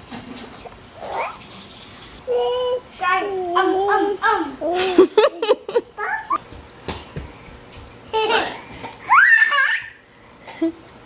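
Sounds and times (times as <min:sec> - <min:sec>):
child squealing: 0:01.0 - 0:01.4, 0:09.1 - 0:10.0
child giggling: 0:04.6 - 0:06.4, 0:08.1 - 0:10.0.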